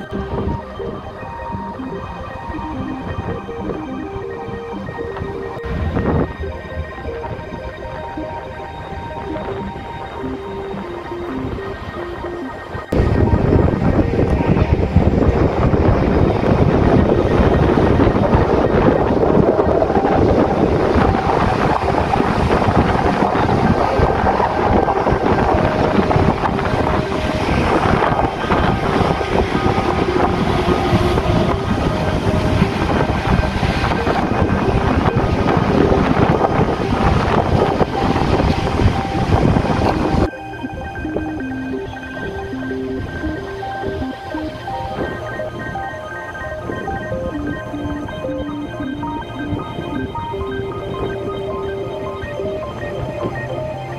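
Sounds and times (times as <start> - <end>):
background music: 0.0 - 53.9
wind buffeting microphone: 0.0 - 53.9
sea surf on beach: 8.6 - 53.9.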